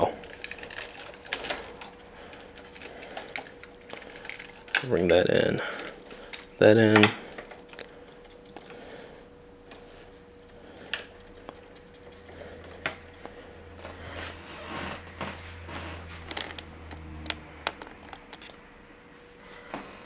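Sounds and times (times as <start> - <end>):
low hum: 0.0 - 20.0.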